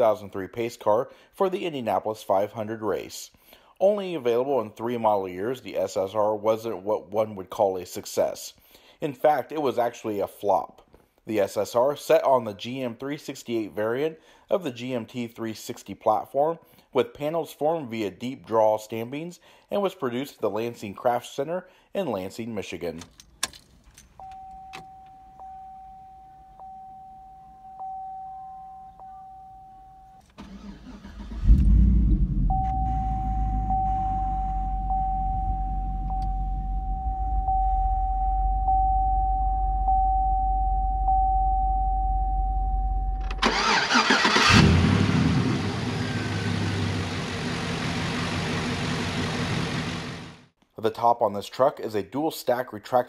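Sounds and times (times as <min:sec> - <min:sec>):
repeating warning chime: 0:24.2 - 0:30.2, 0:32.5 - 0:43.2
car engine starting and idling: 0:28.9 - 0:38.8, 0:43.0 - 0:50.5.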